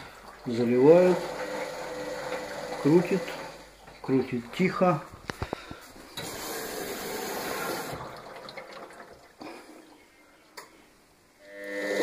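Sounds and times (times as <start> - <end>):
washing machine water rushing: 0.0 - 5.1, 6.2 - 9.4
washing machine drum motor hum: 0.0 - 5.3, 6.2 - 9.3.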